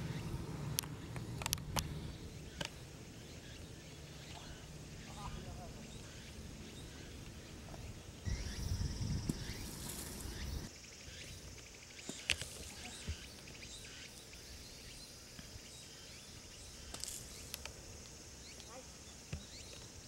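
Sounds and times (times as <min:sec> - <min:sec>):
insects buzzing: 0:00.0 - 0:20.0.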